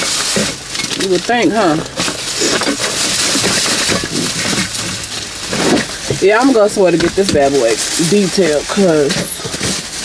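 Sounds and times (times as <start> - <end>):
plastic crinkling and rustling: 0.0 - 10.0.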